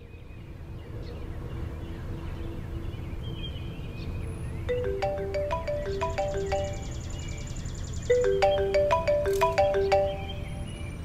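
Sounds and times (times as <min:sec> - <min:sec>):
small birds chirping: 0:03.4 - 0:11.0
phone marimba ringtone: 0:04.7 - 0:07.3, 0:08.1 - 0:10.8.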